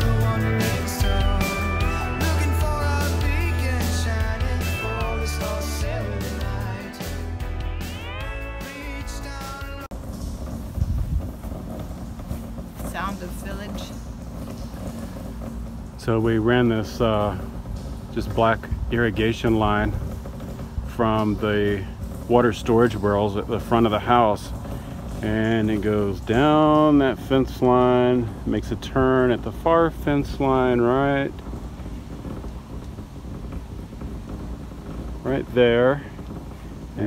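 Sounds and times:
low rumble: 0.0s - 37.0s.

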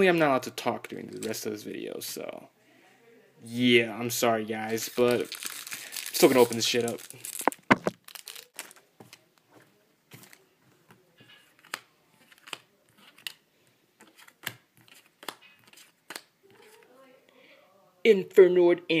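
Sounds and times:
foil wrapper crinkling and tearing: 4.7s - 8.9s
trading cards clicking and snapping: 14.0s - 16.3s.

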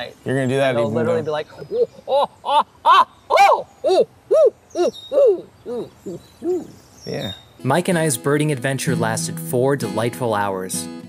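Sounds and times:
man imitating owl calls: 1.0s - 7.4s.

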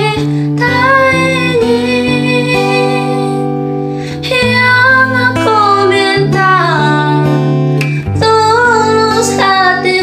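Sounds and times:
acoustic guitar: 0.0s - 10.0s
woman singing pop song: 0.0s - 10.0s.

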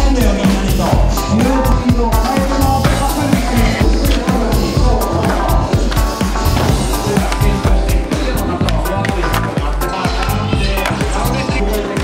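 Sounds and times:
music with steady drum beat: 0.0s - 12.0s.

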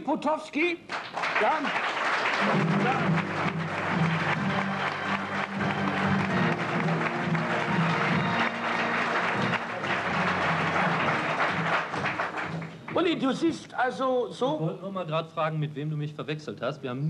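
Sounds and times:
studio audience applauding: 0.9s - 13.4s.

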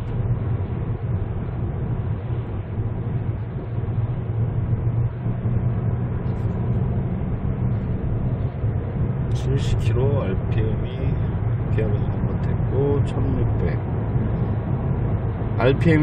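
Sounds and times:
car cabin engine and road noise: 0.0s - 16.0s.

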